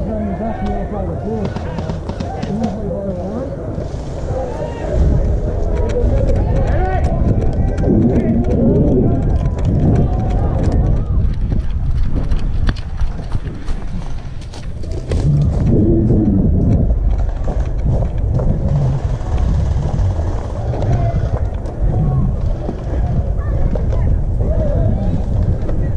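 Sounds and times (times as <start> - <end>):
indistinct voices: 0.0 - 11.8, 13.4 - 25.9
heavy rumble on microphone: 1.9 - 25.9
footsteps running on grass: 6.4 - 23.2.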